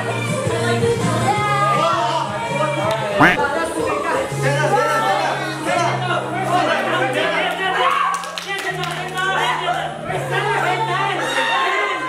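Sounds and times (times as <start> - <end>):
pop song with bass line: 0.0 - 3.6
voices calling out: 3.2 - 3.5
hand claps: 8.1 - 9.3.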